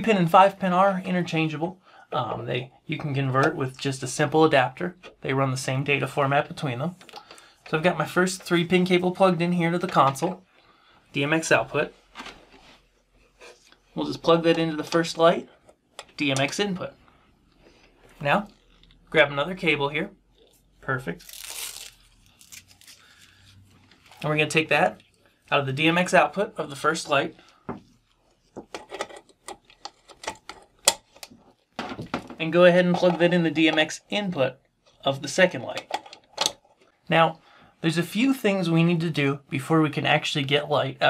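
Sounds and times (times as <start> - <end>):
cable rubbing and scraping: 12.3 - 15.6.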